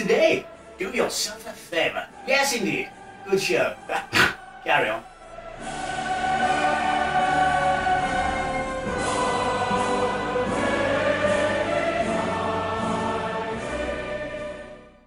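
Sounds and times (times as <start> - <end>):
choir singing held chords: 0.0 - 15.0.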